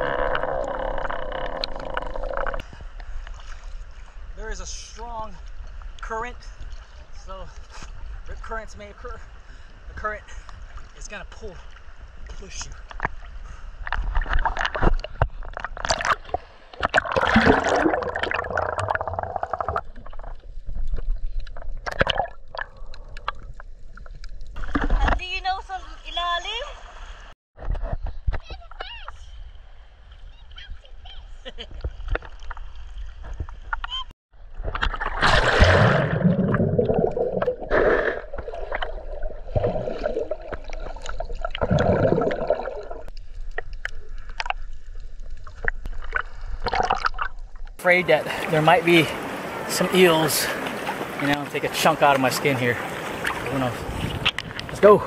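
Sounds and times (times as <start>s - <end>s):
muffled water sloshing and splashing: 0.0s - 4.4s, 9.2s - 25.6s, 31.6s - 55.0s.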